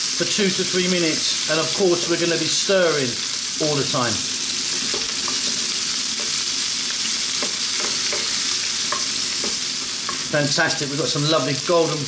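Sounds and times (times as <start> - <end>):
vegetables sizzling in hot oil: 0.0 - 12.0
wooden spatula scraping wok: 4.4 - 11.7.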